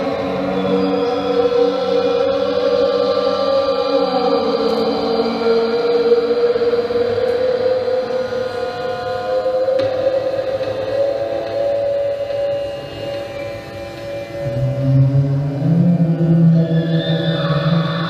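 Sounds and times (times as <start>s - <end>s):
wavering synthesizer drone tones: 0.0s - 18.0s
deep low tone: 14.4s - 18.0s.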